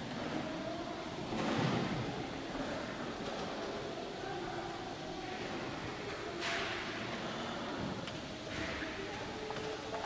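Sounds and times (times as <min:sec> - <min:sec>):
faint murmur: 0:00.0 - 0:10.0
low background hiss: 0:00.0 - 0:10.0.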